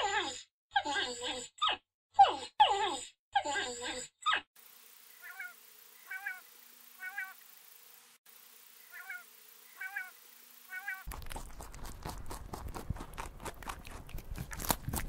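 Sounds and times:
quail calling: 5.2 - 7.4, 8.9 - 11.1
loud rustling and crunching: 11.1 - 15.0.

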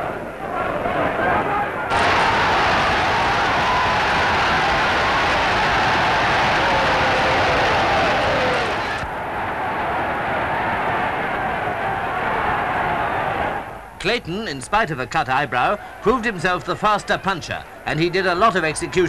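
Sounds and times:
crowd shouting and cheering: 0.0 - 13.9, 15.2 - 19.0.

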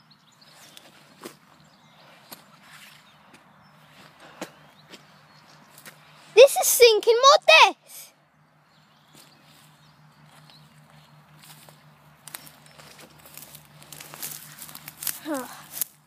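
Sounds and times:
footsteps through dry grass: 0.3 - 6.4, 8.7 - 16.0.

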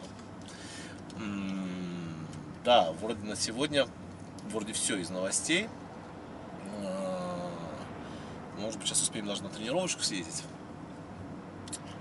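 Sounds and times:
car road noise: 0.0 - 12.0
man humming: 1.2 - 2.5, 6.6 - 7.9.

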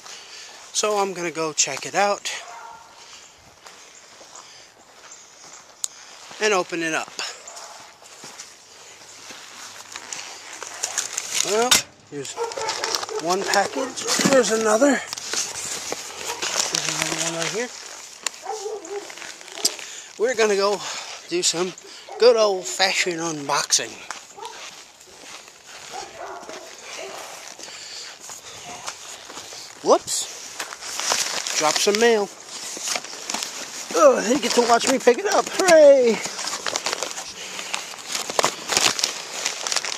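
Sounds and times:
footsteps walking: 0.0 - 39.9
jacket rustling: 5.4 - 39.9
camera brushing against jacket: 9.2 - 19.8.

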